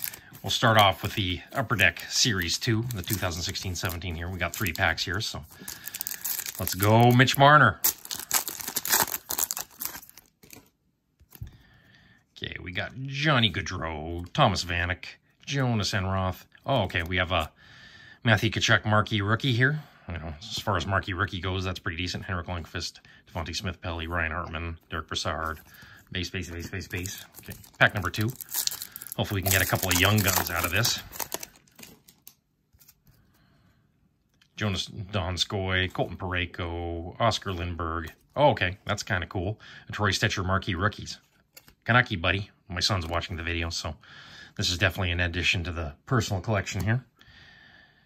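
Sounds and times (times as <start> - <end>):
foil wrapper tearing and crinkling: 0.0 - 1.1, 2.0 - 10.7, 26.6 - 32.4
trading cards clicking and rustling: 0.0 - 10.7, 26.4 - 33.0.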